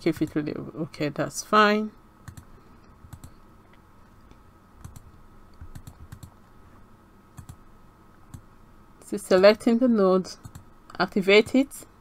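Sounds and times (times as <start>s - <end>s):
computer mouse clicks: 2.2s - 3.4s, 4.2s - 6.4s, 7.4s - 7.6s, 8.3s - 8.5s, 10.4s - 10.7s.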